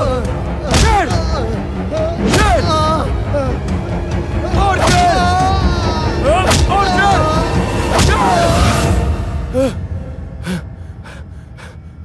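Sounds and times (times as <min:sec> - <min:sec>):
wavering vocal wail: 0:00.0 - 0:09.9.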